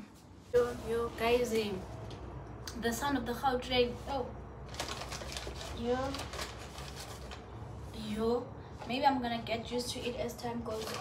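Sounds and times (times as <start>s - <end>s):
paper bag crinkling: 4.6s - 7.6s.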